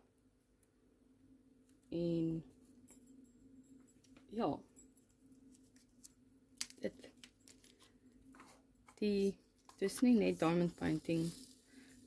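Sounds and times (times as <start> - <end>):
plastic pieces clicking and rustling: 6.6 - 7.9.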